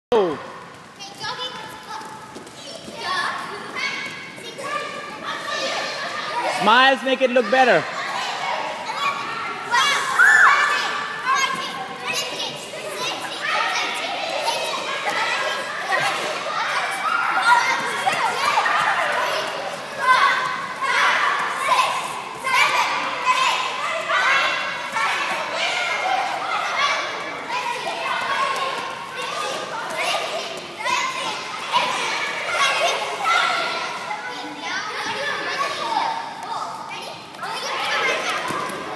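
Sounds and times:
children playing and chattering: 0.2s - 38.9s.

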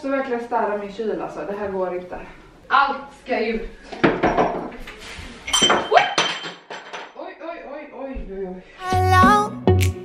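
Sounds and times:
glass bottles clinking: 5.5s - 7.1s.

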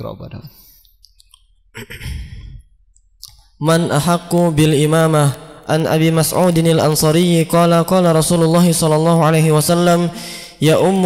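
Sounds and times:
man sighing into microphone: 1.8s - 2.6s.

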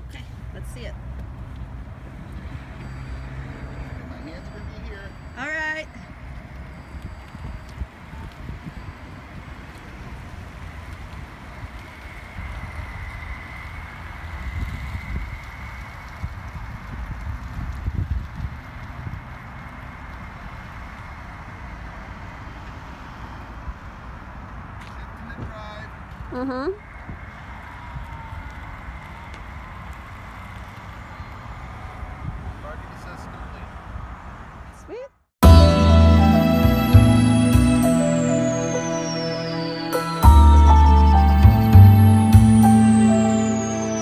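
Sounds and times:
slow-moving car: 0.0s - 44.0s.

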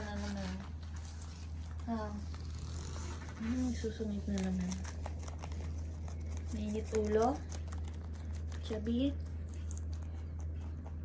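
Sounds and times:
rabbit chewing lettuce: 0.0s - 11.0s
steady low hum: 0.0s - 11.0s.

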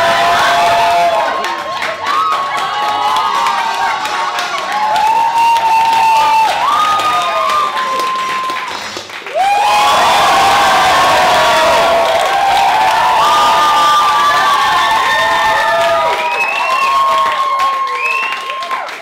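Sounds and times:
audience cheering and applauding: 0.0s - 19.0s
high shouts and whoops: 0.0s - 19.0s.

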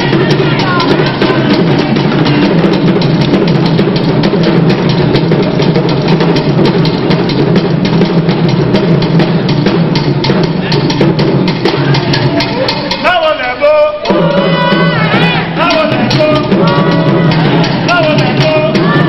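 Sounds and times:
loud drum music: 0.0s - 19.0s.

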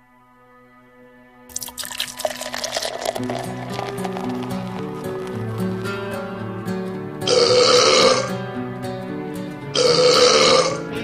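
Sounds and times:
background music: 0.0s - 11.0s
man belching loudly: 7.3s - 8.3s, 9.8s - 10.9s.

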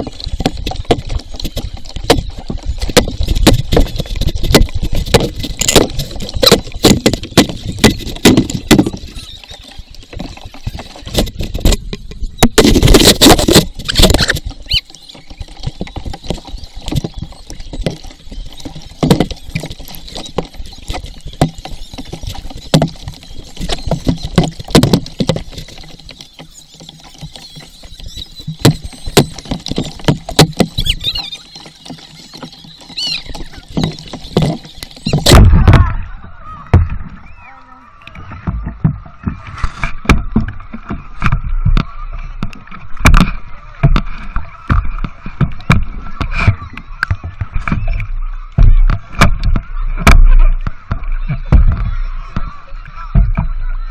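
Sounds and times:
wooden paddle strokes: 0.0s - 35.8s
water splashing against boat: 0.0s - 53.9s.

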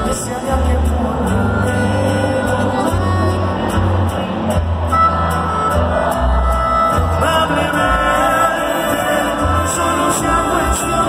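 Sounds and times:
regional mexican band music: 0.0s - 11.0s.

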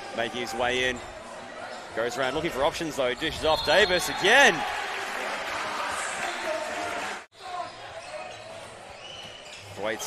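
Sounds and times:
crowd and court noise: 0.0s - 10.0s.

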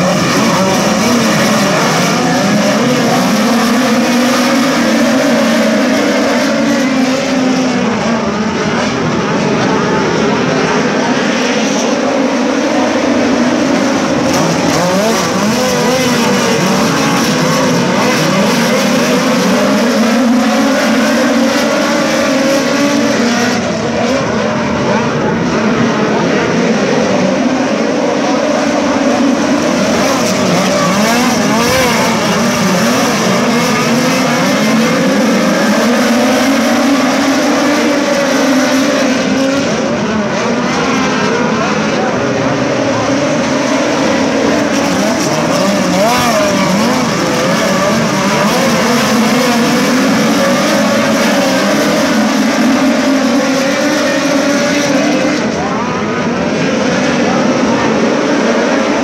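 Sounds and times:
race car engines: 0.0s - 59.0s.

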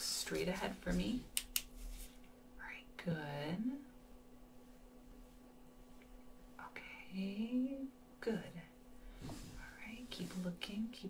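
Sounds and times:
faint low hum: 0.0s - 11.0s
woman whispering: 2.6s - 3.8s, 6.6s - 8.8s, 9.6s - 11.0s.

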